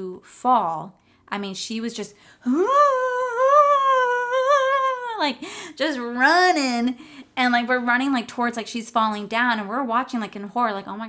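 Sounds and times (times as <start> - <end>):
woman's long high vowel: 2.4 - 6.9.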